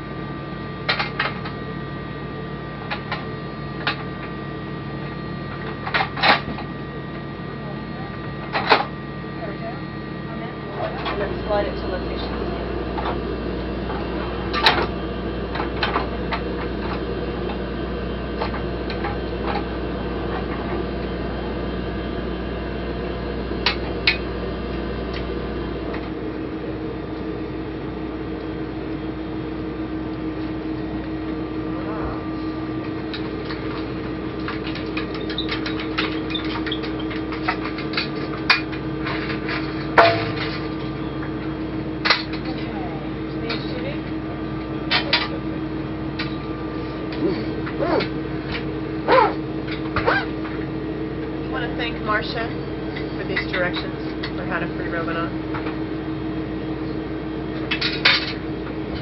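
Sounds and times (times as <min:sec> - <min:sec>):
ventilation humming: 0:00.0 - 0:59.0.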